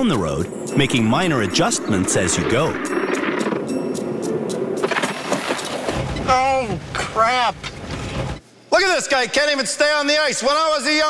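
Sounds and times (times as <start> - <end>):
man's voice: 0.0 - 2.9, 8.7 - 11.0.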